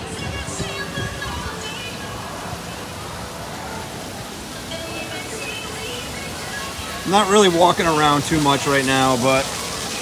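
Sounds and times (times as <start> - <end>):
faint music: 0.0 - 10.0
steady wash of noise: 0.0 - 10.0.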